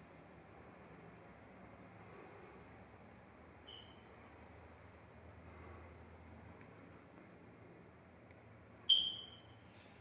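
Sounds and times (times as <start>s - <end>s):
faint room noise: 0.0s - 10.0s
high-pitched beep: 8.9s - 9.5s.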